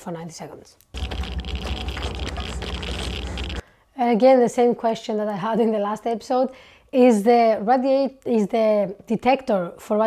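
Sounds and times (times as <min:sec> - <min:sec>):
geiger counter crackling: 0:00.9 - 0:03.6.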